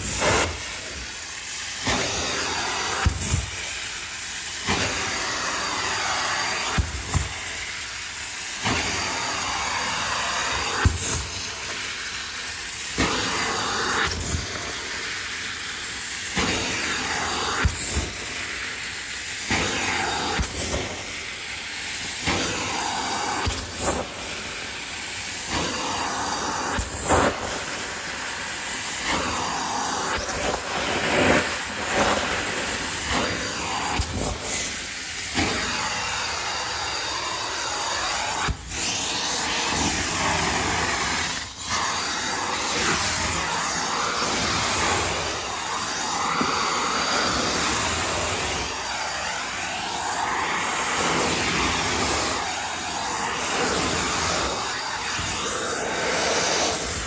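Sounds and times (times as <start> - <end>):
carpet extraction suction hiss: 0.0 - 57.0.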